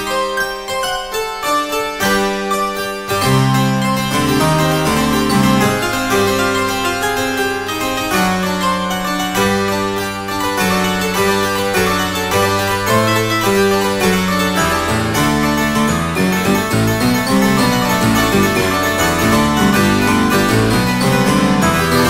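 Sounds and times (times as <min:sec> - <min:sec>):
harpsichord chords: 0:00.0 - 0:22.0.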